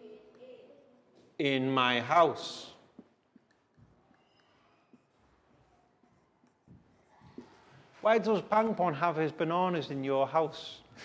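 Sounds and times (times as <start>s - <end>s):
marker pen scratching on whiteboard: 3.0s - 8.3s.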